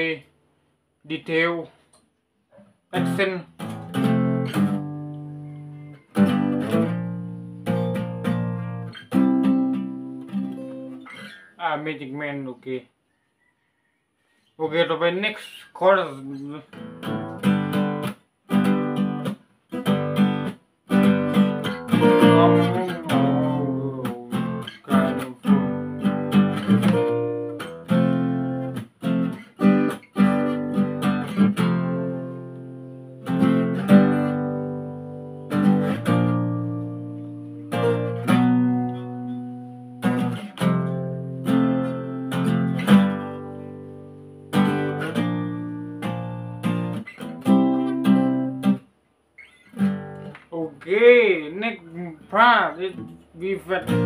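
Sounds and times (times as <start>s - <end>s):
acoustic guitar strumming: 2.9s - 12.0s, 16.6s - 54.0s.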